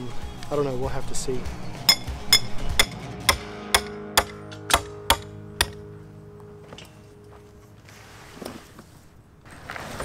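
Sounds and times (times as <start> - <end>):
hammer striking metal stakes: 1.9 - 5.9.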